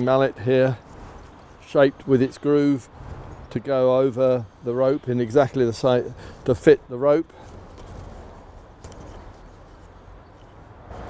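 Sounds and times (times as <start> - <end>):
wooden mallet and line handling: 7.4 - 11.0.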